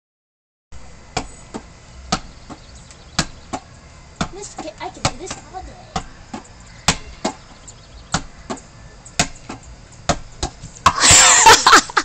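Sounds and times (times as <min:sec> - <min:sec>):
ball slapping against hands: 0:09.2 - 0:11.0.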